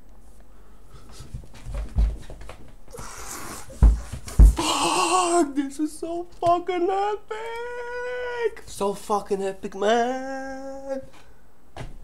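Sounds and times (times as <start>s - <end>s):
dull thumps: 3.5s - 4.8s, 11.7s - 12.0s
man whimpering and squealing: 4.6s - 6.1s, 6.9s - 8.6s.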